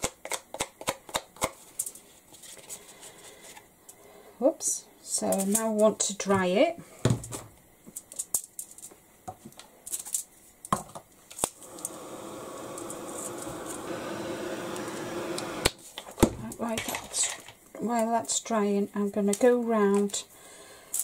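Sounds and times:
heat tool whirring hum: 11.5 - 15.9.

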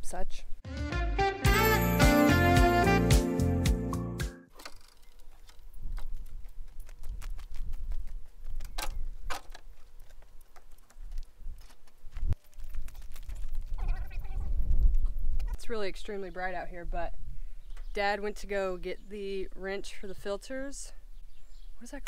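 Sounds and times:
footsteps crunching on gravel: 9.4 - 14.2
wind rumble on microphone: 11.1 - 17.9.

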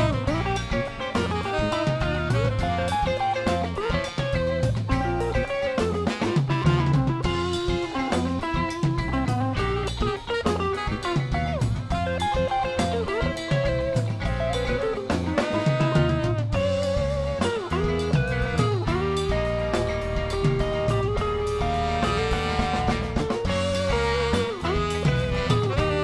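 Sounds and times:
drum kit with cymbals: 0.0 - 26.0
electric guitar lines: 0.0 - 26.0.

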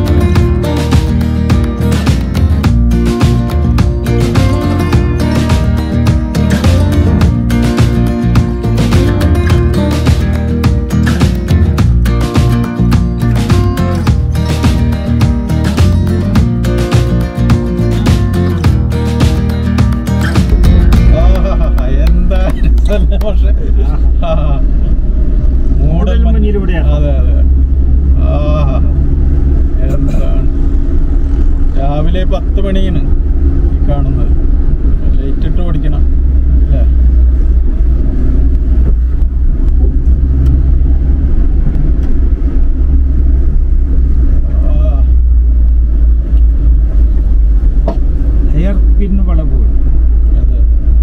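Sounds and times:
car driving from inside cabin: 0.0 - 51.0.

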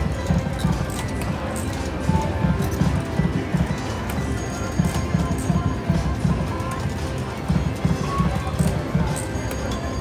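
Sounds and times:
slot machine game music: 0.0 - 10.0.

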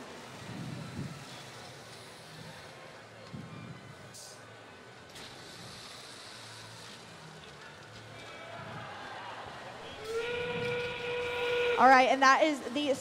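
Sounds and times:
faint arena background noise: 0.0 - 13.0
steam train whistle: 9.9 - 12.0.

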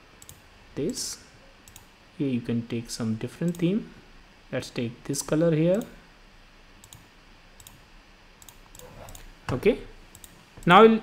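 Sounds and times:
faint computer mouse clicks: 6.8 - 7.8, 8.4 - 9.3, 10.1 - 10.4.

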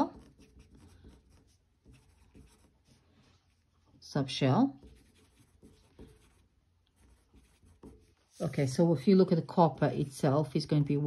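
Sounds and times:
pencil scratching on paper: 0.0 - 3.7, 4.7 - 9.4.

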